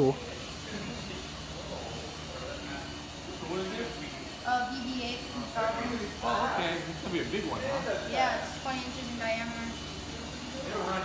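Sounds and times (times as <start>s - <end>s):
electric motor whirring: 0.0s - 11.0s
quiet voices talking: 0.0s - 11.0s.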